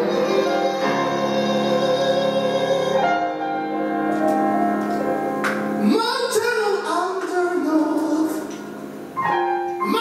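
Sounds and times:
high voice singing: 0.0s - 3.4s.

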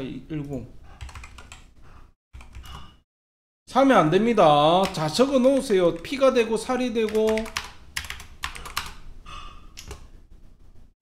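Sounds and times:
computer keyboard keystrokes: 1.0s - 1.6s, 7.1s - 9.0s.

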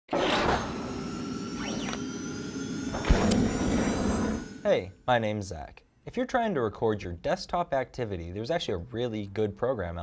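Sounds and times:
steady tones: 0.6s - 5.7s.

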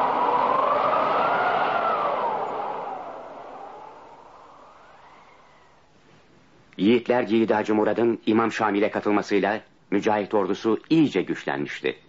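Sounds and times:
hissing rush with faint whistle: 0.0s - 5.9s.

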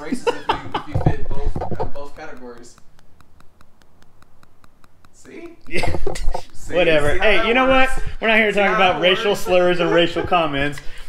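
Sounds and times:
quiet even ticking: 0.0s - 11.0s.

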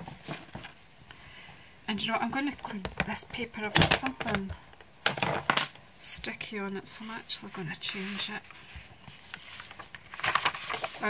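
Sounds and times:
cloth rustling: 7.9s - 11.0s.

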